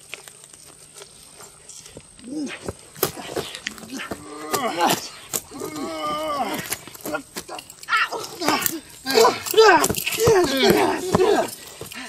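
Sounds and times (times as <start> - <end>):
person crying out wordlessly: 3.8 - 11.6.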